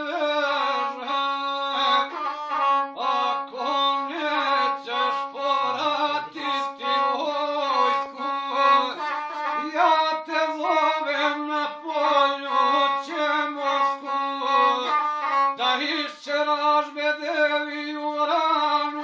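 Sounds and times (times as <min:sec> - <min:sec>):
man singing: 0:00.0 - 0:19.0.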